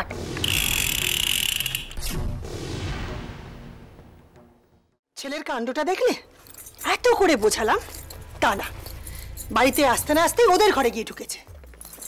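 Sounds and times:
buzzing mechanical rattle: 0.4 - 2.0.

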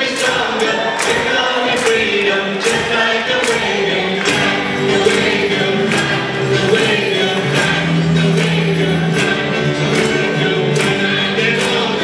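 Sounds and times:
acoustic guitars: 0.0 - 12.0
voices singing together: 0.0 - 12.0.

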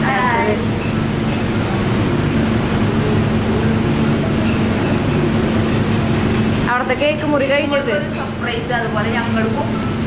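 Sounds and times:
constant hum: 0.0 - 10.0.

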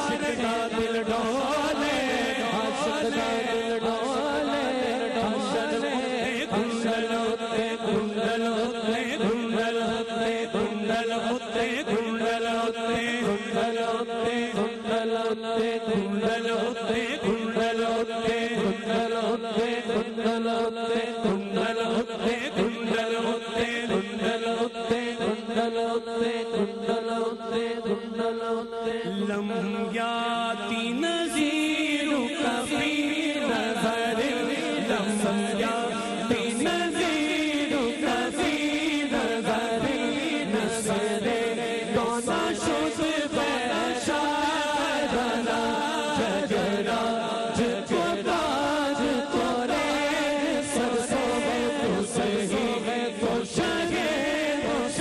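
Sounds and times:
backing voices holding drone: 0.0 - 55.0
man chanting: 0.0 - 55.0.

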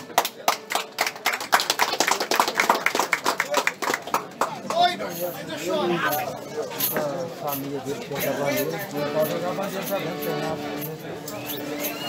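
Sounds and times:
people clapping: 0.0 - 5.2.

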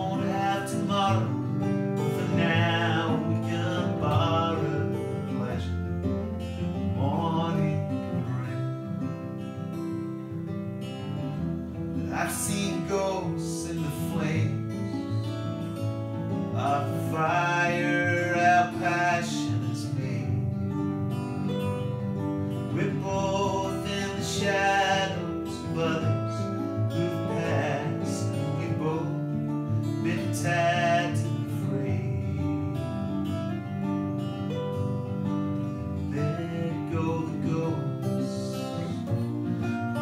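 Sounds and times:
two acoustic guitars playing: 0.0 - 40.0.

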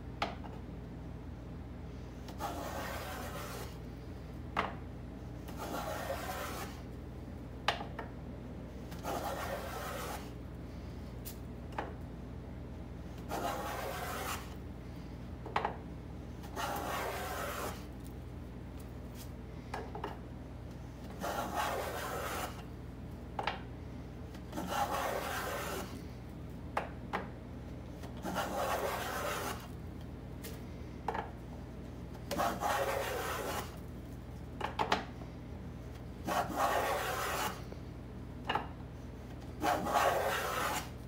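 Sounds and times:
wood plane rasping strokes: 2.4 - 3.7, 5.6 - 6.8, 9.0 - 10.3, 13.3 - 14.5, 16.6 - 17.9, 21.2 - 22.6, 24.6 - 25.9, 28.2 - 29.7, 32.3 - 33.8, 36.2 - 37.6, 39.6 - 41.0.

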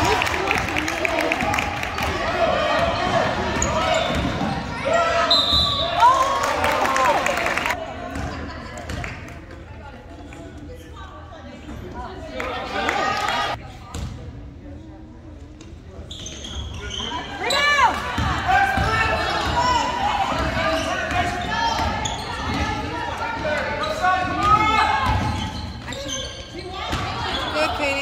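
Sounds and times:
people calling out in echoing gym: 0.0 - 13.9, 16.3 - 28.0.

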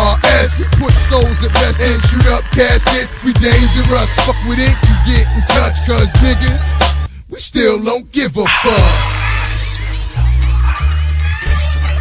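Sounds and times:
rapping over a beat: 0.0 - 12.0.

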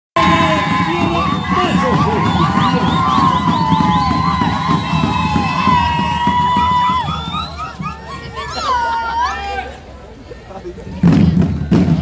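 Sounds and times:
loud crowd noise: 0.2 - 12.0.

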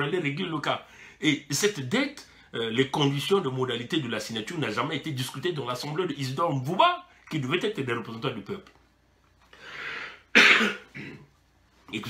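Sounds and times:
man coughing: 10.3 - 11.3.

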